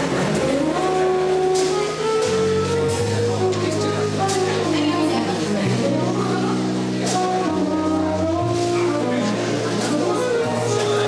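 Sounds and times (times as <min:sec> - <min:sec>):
drums: 0:00.0 - 0:11.0
saxophone held notes: 0:00.0 - 0:11.0
upright bass: 0:00.0 - 0:11.0.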